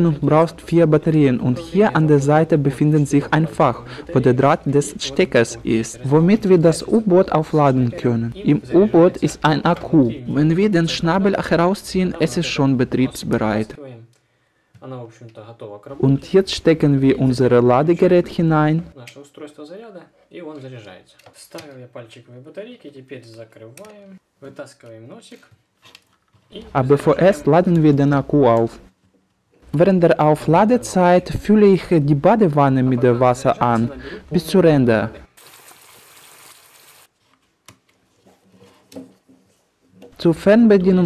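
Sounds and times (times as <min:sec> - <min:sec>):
man talking: 0:00.0 - 0:14.1, 0:29.7 - 0:35.3.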